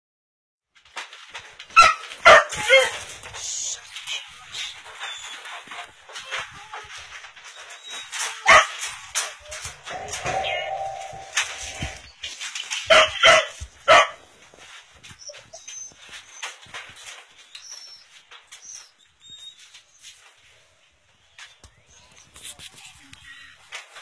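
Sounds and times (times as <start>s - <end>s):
dogs yipping: 1.7s - 3.4s, 4.6s - 12.1s, 12.8s - 14.2s, 15.0s - 19.7s
dogs barking: 1.8s - 3.1s, 8.2s - 9.3s, 12.9s - 14.2s
steady high tone: 9.9s - 12.1s.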